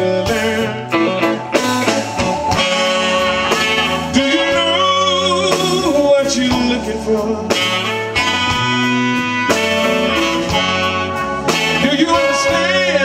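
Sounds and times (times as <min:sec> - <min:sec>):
blues band playing: 0:00.0 - 0:13.0.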